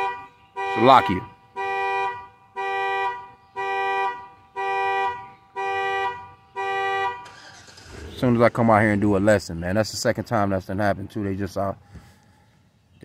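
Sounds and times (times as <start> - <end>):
car alarm horn honking: 0.0 - 8.4.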